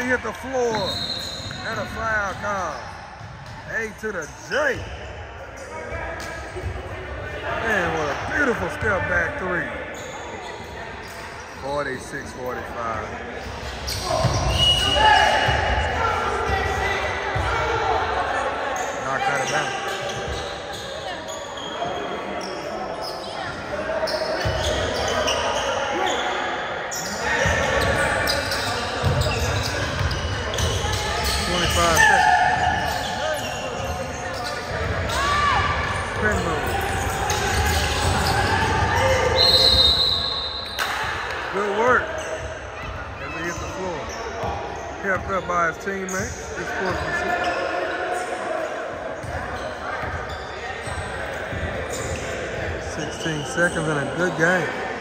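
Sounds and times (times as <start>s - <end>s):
basketball bouncing on court: 29.0s - 39.3s, 44.4s - 45.4s.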